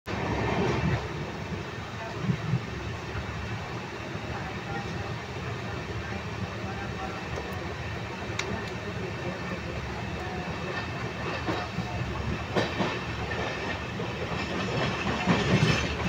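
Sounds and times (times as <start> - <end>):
train rumbling on track: 0.1 - 16.0.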